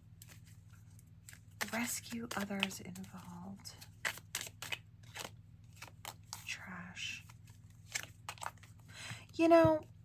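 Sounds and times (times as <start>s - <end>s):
cards clicking and snapping: 1.2s - 6.4s, 7.8s - 8.8s.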